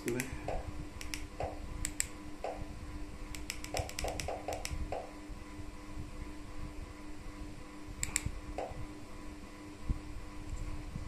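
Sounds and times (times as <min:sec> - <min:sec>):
plastic remote buttons clicking: 0:03.4 - 0:04.8.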